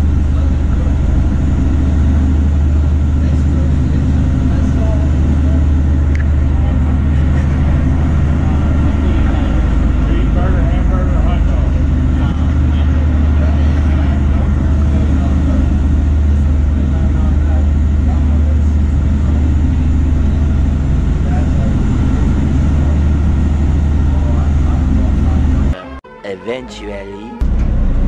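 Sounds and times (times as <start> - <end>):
boat engine droning: 0.0 - 26.2.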